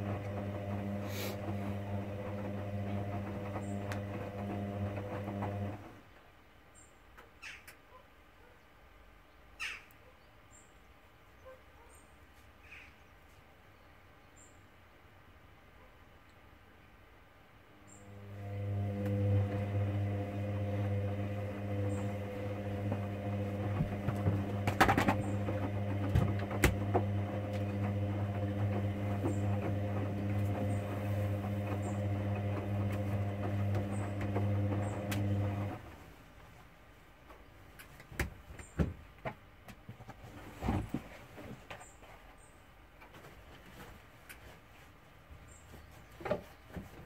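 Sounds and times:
washing machine motor hum: 0.0s - 6.0s, 18.0s - 36.1s
clicks from tumbling load: 21.4s - 35.8s.

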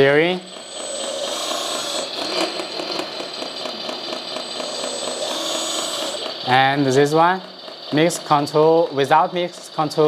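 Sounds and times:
hydraulic pump whining: 0.0s - 10.0s.

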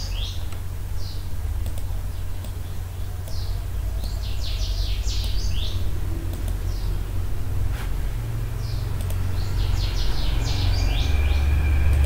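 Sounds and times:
birds chirping: 0.0s - 12.0s
low hum: 0.0s - 12.0s
faint clicks: 1.6s - 4.2s, 6.3s - 6.8s, 8.9s - 9.2s.

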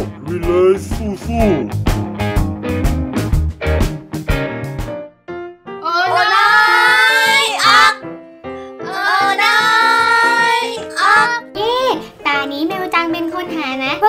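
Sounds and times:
backing music: 0.0s - 14.0s.

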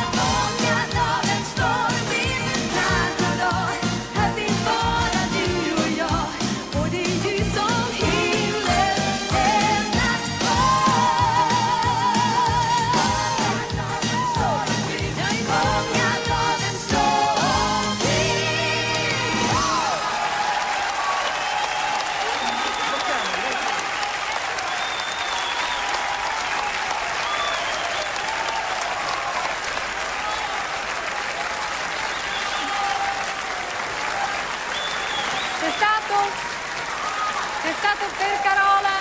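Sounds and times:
audience applauding: 17.0s - 39.0s
cheers and calls: 19.4s - 39.0s.

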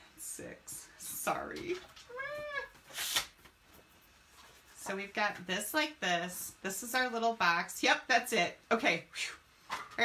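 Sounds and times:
cat meowing: 2.1s - 2.8s.

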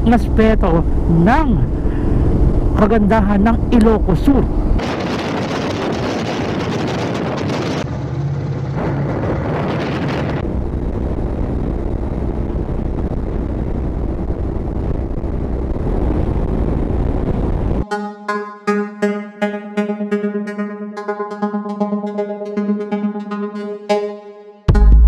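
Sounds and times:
wind rush and road noise: 0.0s - 17.8s
music with a beat: 17.8s - 25.0s.

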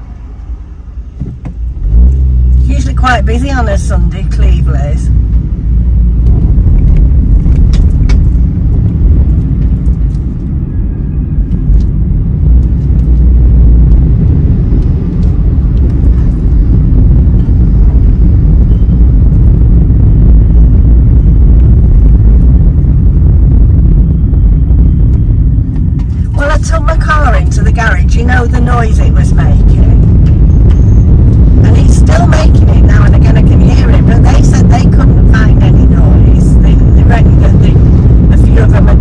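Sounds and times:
car engine and road noise: 0.0s - 39.0s.

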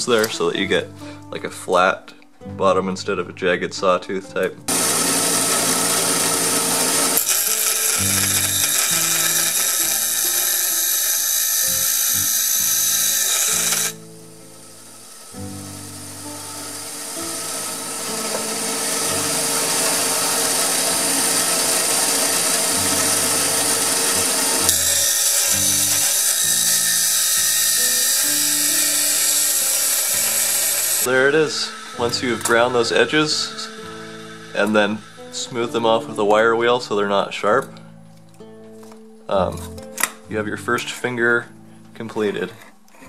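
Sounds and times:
background music: 0.0s - 43.0s
bench grinder grinding steel: 4.7s - 36.8s.

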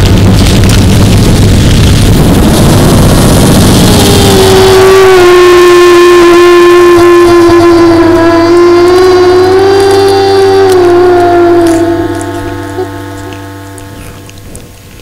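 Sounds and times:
loud droning tone: 0.0s - 15.0s
rumbling noise: 0.0s - 15.0s.

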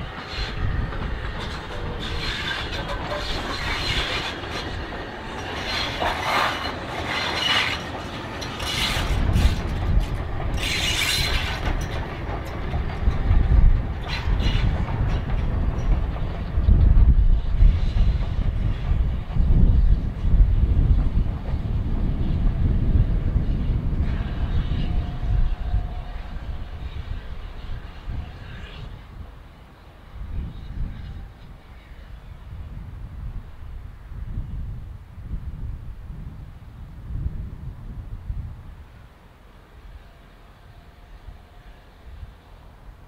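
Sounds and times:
train wheels rumbling on rails: 0.0s - 43.0s.

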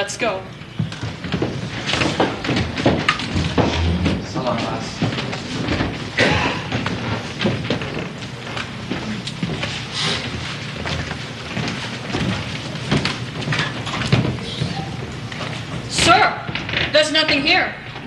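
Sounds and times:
knocks and thuds of footsteps: 0.6s - 17.6s.

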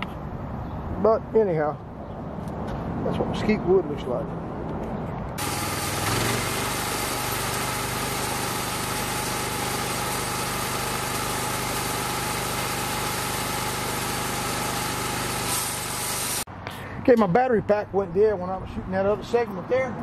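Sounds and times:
sawmill engine running: 5.4s - 16.5s.

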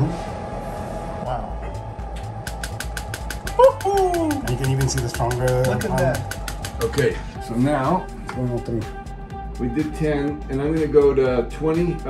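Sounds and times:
rapid sharp clicks: 2.3s - 7.0s.

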